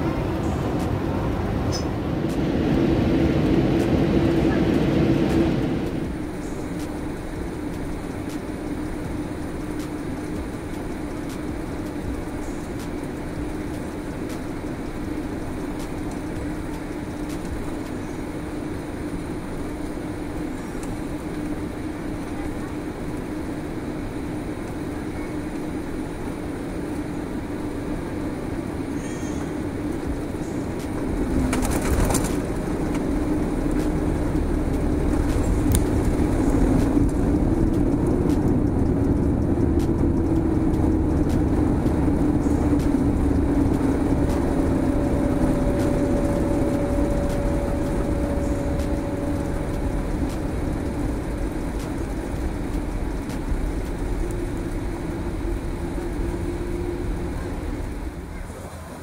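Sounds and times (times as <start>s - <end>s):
steady hum: 0.0s - 58.8s
jet engine and cabin rumble: 0.0s - 59.0s.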